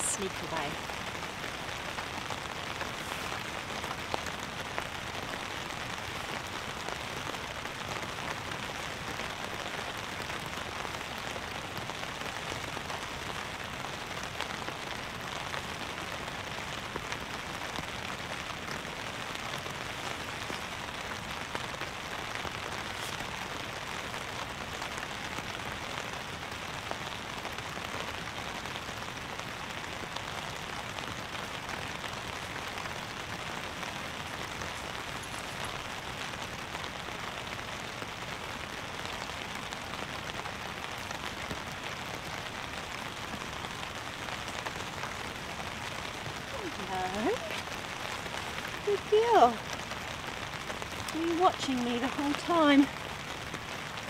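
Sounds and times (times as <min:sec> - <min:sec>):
rain on a tarp: 0:00.0 - 0:54.0.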